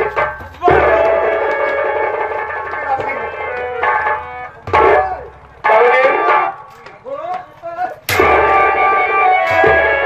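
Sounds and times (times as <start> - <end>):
light drum strokes: 0.0 - 10.0.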